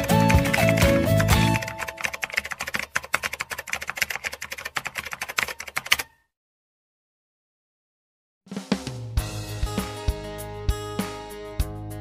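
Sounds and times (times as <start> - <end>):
keyboard typing clicks: 0.0 - 6.2.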